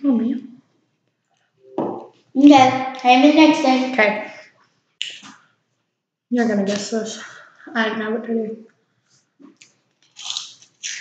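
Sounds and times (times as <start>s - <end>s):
chewing crunchy snack: 9.5s - 11.0s.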